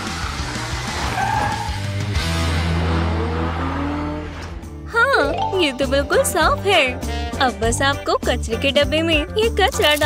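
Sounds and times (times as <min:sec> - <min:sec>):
background music: 0:04.6 - 0:10.0.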